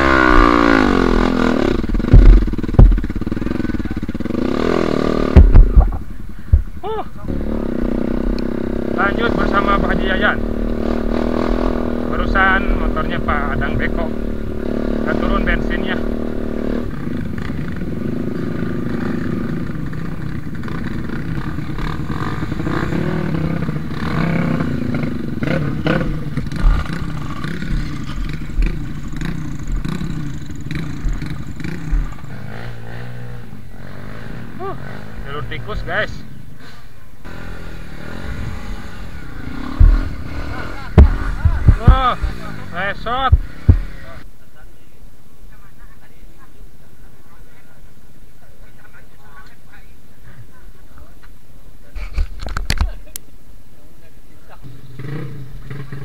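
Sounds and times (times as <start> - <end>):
motorcycle engines at low revs: 0.0 - 56.0
loud knocks: 2.0 - 3.1
people's voices: 5.4 - 16.1, 38.4 - 55.0.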